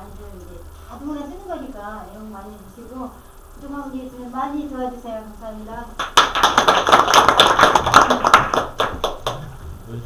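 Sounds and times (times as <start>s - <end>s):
small group applauding: 6.0s - 9.6s.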